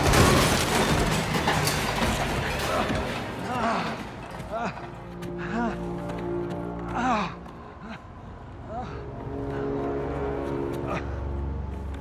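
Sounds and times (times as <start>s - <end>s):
low music drone: 2.6s - 12.0s.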